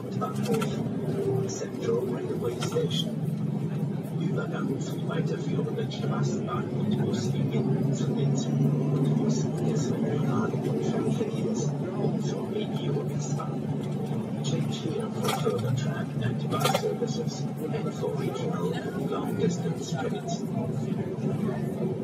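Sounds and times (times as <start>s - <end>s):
tram running hum: 0.0s - 22.0s.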